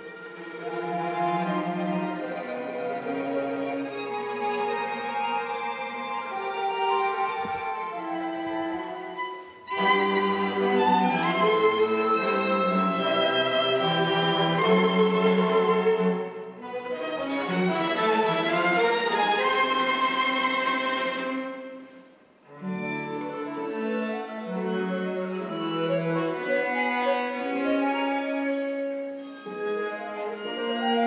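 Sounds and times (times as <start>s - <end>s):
chamber ensemble playing slow piece: 0.0s - 31.0s.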